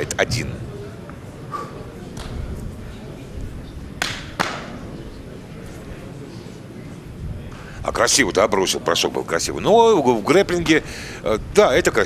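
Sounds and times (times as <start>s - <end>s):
low hall rumble: 0.0s - 12.0s
sharp smacks ringing in a hall: 2.1s - 2.5s, 4.0s - 4.9s.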